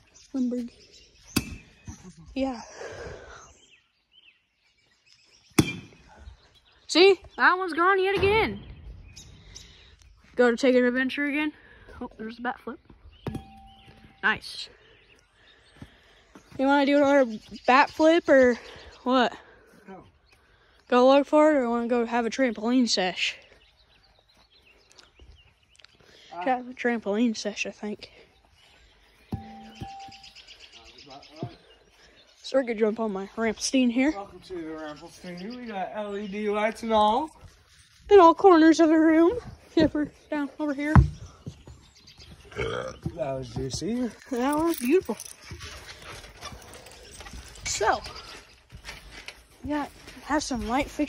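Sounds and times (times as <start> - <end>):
bat hitting ball: 5.6 - 6.0, 29.3 - 30.3.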